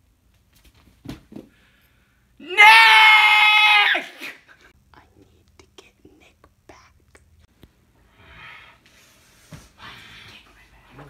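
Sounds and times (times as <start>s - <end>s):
boy screaming: 2.4s - 4.4s
faint breathing: 8.0s - 11.0s.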